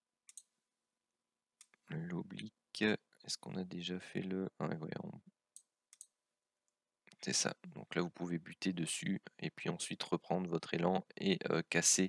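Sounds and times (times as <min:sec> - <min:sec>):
computer mouse clicking: 0:00.3 - 0:00.5, 0:05.6 - 0:06.1.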